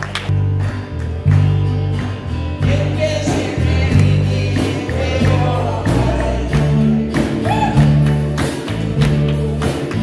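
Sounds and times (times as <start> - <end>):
band with deep bass and beat: 0.0 - 10.0
choir singing gospel: 2.6 - 10.0.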